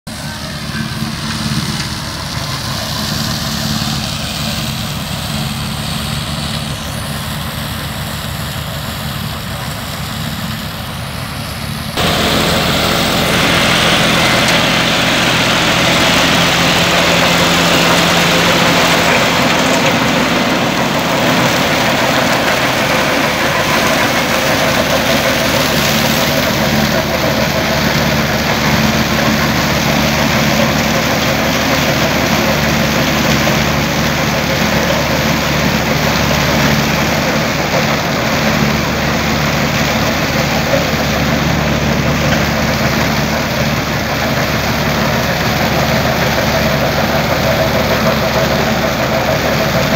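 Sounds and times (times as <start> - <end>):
tractor diesel engine running: 0.0 - 49.9
strong hiss and rattle: 1.0 - 49.9.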